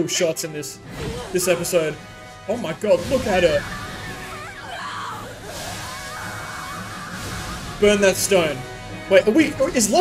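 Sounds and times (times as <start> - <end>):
music: 0.0 - 10.0
woman screaming in agony: 3.6 - 7.7.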